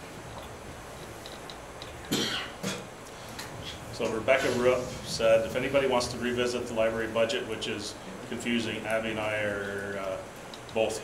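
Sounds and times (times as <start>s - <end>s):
person coughing: 2.1s - 2.9s.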